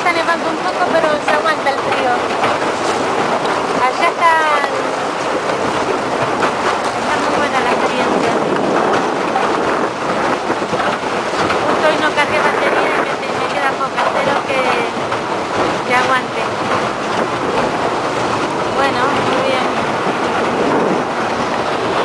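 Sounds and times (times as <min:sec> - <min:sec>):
sea ice scraping against boat hull: 0:00.1 - 0:22.0.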